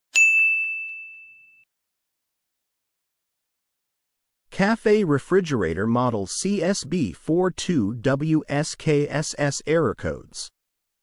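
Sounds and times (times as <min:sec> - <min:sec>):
bell-like chime ding: 0:00.1 - 0:01.7.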